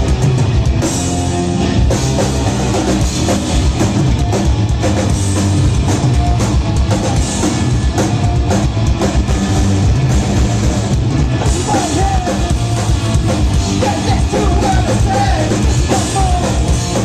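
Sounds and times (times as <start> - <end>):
bass guitar: 0.0 - 17.0
drum kit: 0.0 - 17.0
electric guitars: 0.0 - 17.0
person singing: 11.4 - 12.5, 13.8 - 16.8.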